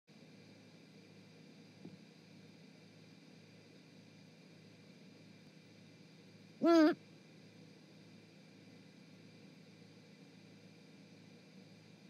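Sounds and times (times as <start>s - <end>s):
faint hiss and hum: 0.1s - 12.0s.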